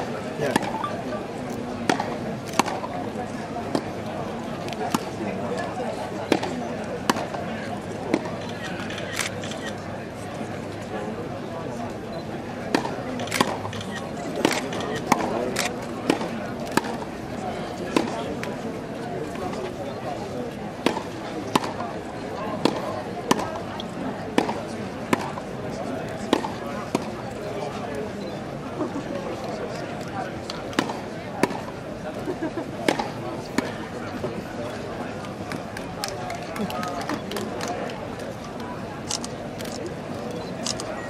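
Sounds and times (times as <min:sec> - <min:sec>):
tennis ball struck by racket: 0:00.5 - 0:00.8, 0:20.8 - 0:21.8, 0:24.4 - 0:25.4, 0:30.8 - 0:31.7
tennis racket strikes and bounces: 0:00.5 - 0:00.8, 0:30.8 - 0:31.7.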